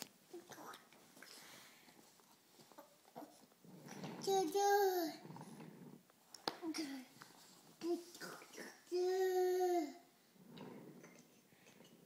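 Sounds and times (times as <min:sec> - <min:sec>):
toddler's voice: 0:04.0 - 0:05.2, 0:07.8 - 0:10.1.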